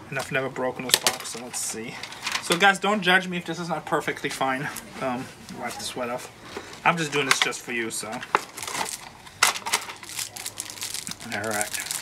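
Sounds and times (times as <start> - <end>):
packaging crinkling: 8.2 - 12.0
sharp crack of packaging: 8.4 - 12.0.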